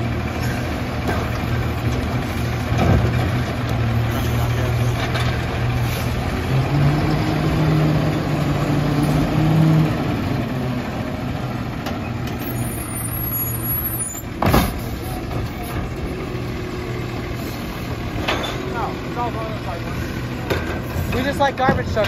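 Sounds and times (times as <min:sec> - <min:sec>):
garbage truck engine running: 0:00.0 - 0:22.0.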